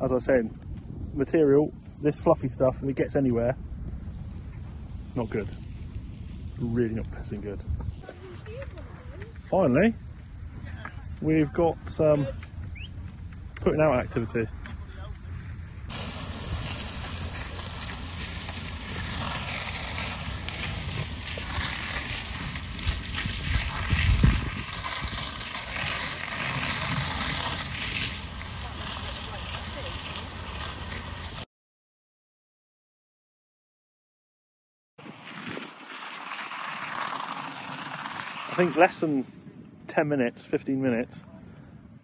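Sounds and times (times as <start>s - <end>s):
wind rumbling on microphone: 0.0s - 31.4s, 35.0s - 42.0s
fire hose spraying water: 4.0s - 10.0s, 15.9s - 31.4s, 35.0s - 39.2s.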